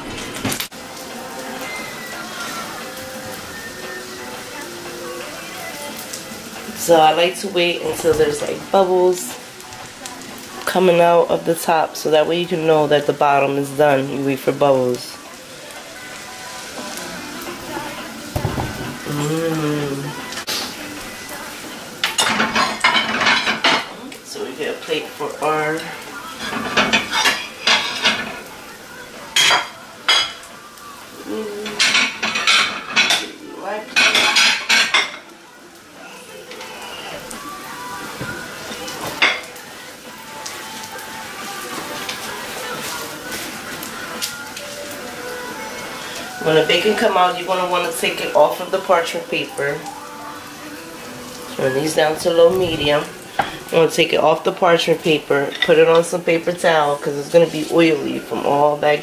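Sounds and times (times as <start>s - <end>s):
batter sizzling in frying pans: 0.0s - 59.0s
pans and utensils clattering: 0.0s - 59.0s.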